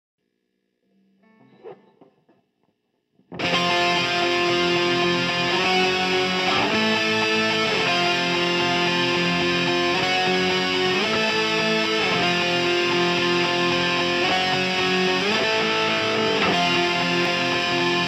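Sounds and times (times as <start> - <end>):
distorted electric guitar chords: 3.3 - 18.0.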